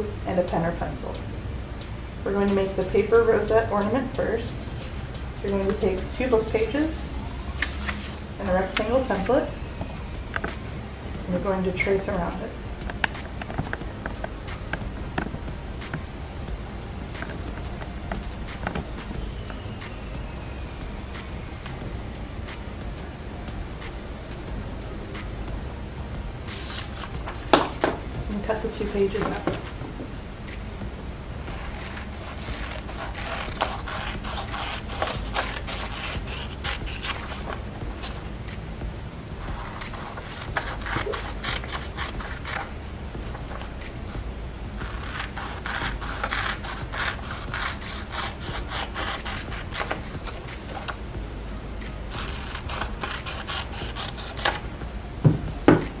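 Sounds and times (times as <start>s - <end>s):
scissors snipping paper: 31.5s - 38.2s, 39.5s - 42.8s, 44.8s - 51.0s, 52.1s - 54.6s.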